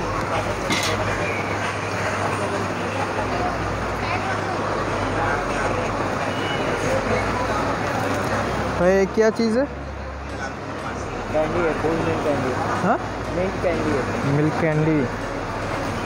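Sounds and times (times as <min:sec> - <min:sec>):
many indistinct voices: 0:00.0 - 0:16.0
street traffic: 0:00.0 - 0:16.0.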